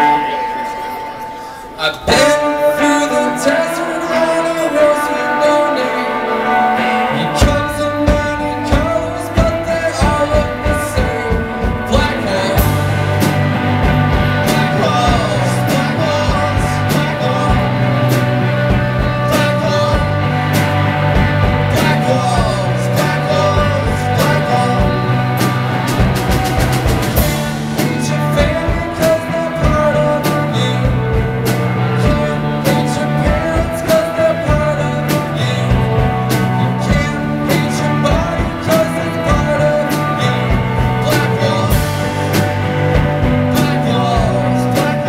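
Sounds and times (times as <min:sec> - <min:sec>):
rock band electric guitar chords: 0:00.0 - 0:45.0
drum kit: 0:06.2 - 0:45.0.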